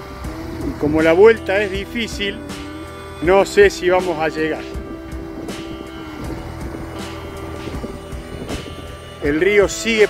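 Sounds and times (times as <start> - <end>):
background music: 0.0 - 10.0
wind rumbling on microphone: 0.0 - 10.0.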